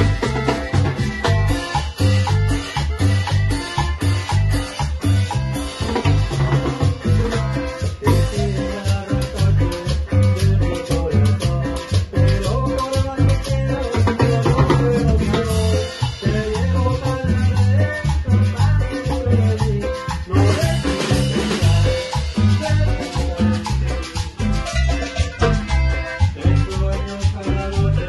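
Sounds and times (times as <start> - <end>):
bass and drum beat: 0.0 - 28.0
electric guitar: 0.0 - 28.0
live band playing latin dance music: 0.0 - 28.0.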